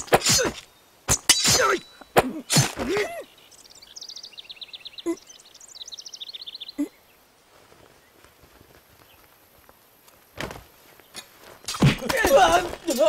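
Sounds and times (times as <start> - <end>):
bird chirping trills: 0.0 - 8.3.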